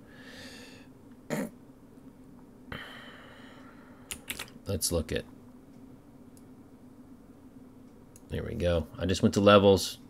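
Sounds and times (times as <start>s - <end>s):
faint low hum: 0.0s - 10.0s
man's throat noise: 1.3s - 1.6s.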